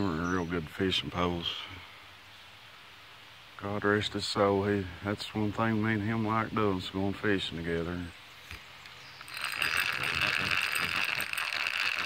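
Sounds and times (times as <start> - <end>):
fishing reel clicking: 9.2 - 12.0.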